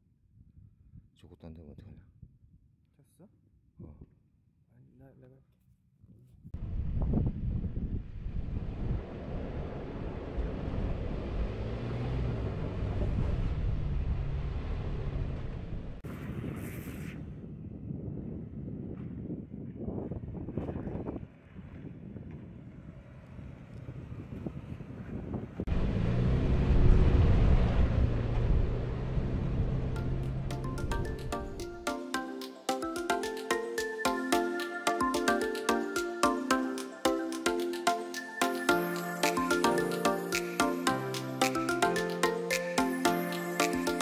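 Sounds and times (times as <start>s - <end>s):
wind noise on microphone: 0.0s - 1.2s, 1.8s - 2.8s, 6.1s - 11.6s, 15.6s - 31.6s
engine revving under load: 8.4s - 16.0s, 22.7s - 31.2s.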